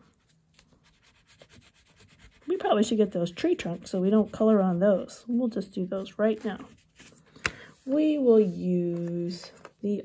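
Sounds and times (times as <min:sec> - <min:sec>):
oil pastel scratching on paper: 0:00.0 - 0:07.1.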